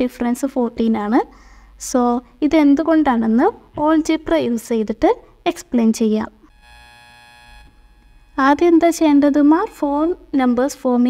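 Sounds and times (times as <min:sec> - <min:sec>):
faint steady buzz: 0:00.0 - 0:11.0.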